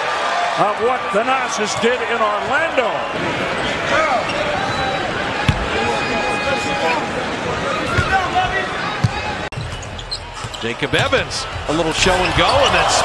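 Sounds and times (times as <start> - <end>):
arena crowd noise: 0.0 - 13.0.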